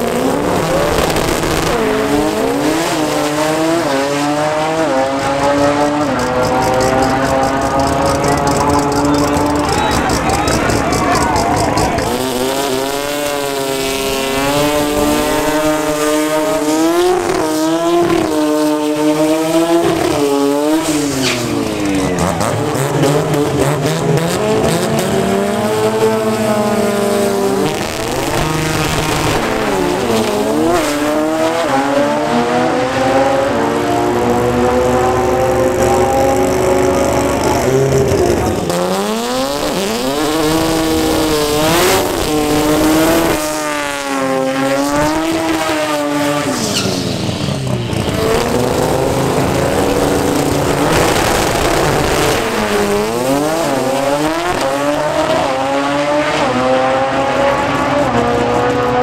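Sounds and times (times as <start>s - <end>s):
car engine revving: 0.0s - 59.0s
gear changes: 0.0s - 59.0s
tyres squealing: 5.5s - 15.6s.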